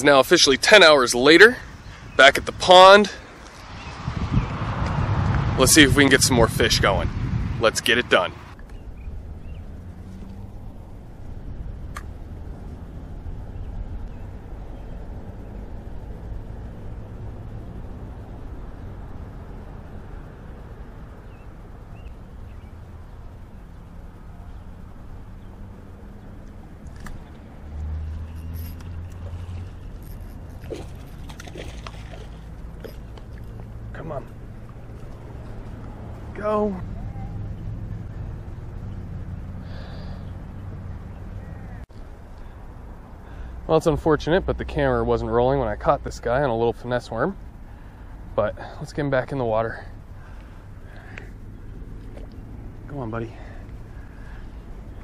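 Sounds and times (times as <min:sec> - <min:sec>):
low outdoor rumble: 0:00.0 - 0:55.0.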